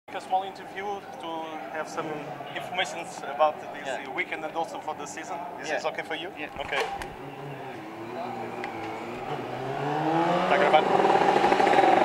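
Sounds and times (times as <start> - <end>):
racing motorcycle engine: 7.1 - 12.0.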